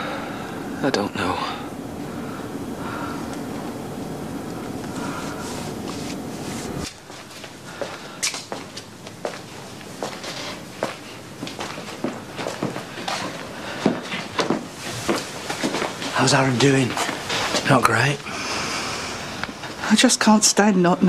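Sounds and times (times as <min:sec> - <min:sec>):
steady background hum: 0:00.0 - 0:21.0
footsteps on hard floor: 0:04.8 - 0:17.8.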